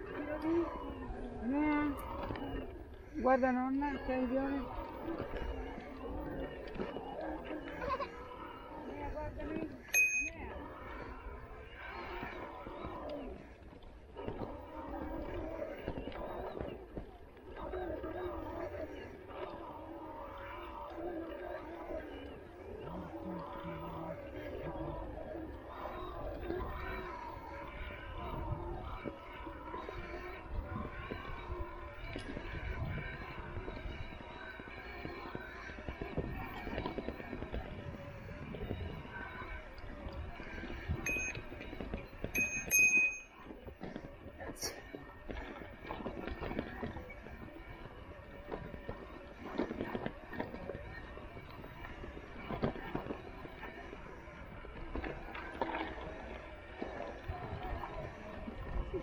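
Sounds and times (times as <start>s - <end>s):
indistinct chatter: 0.0s - 59.0s
bicycle bell ring: 9.9s - 10.4s, 41.1s - 41.4s, 42.4s - 43.4s.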